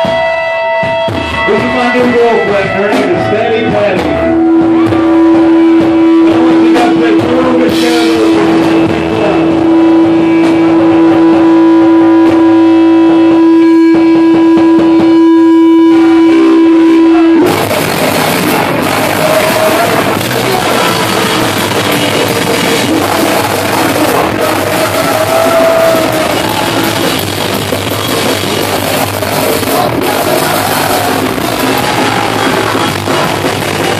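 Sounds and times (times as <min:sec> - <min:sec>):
punk rock band playing live: 0:00.0 - 0:33.9
sustained guitar note: 0:00.0 - 0:33.9.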